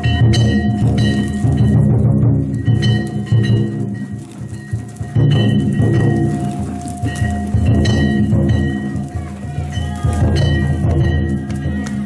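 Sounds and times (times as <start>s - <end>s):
big drum beating: 0.0s - 12.0s
gongs or cymbals clanging: 0.0s - 12.0s.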